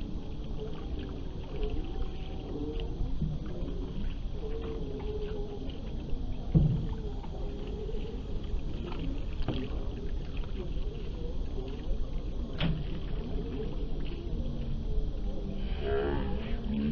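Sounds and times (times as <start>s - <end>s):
low steady rumble: 0.0s - 16.9s
water lapping against hull: 0.0s - 16.9s
thump: 6.5s - 6.9s.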